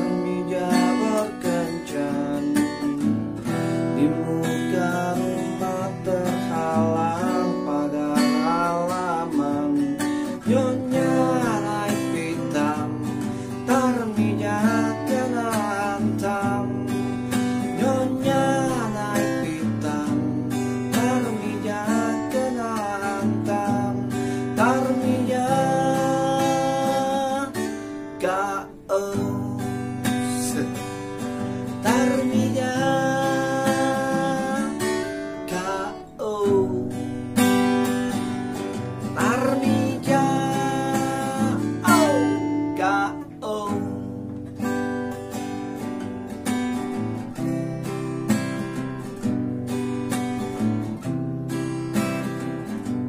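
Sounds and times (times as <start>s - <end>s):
man singing: 0.0s - 44.9s
strummed acoustic guitar: 0.0s - 53.0s.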